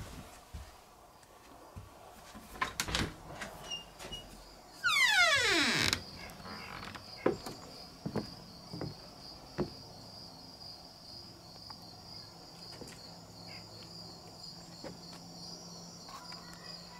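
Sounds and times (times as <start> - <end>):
crickets chirping: 3.6 - 16.9.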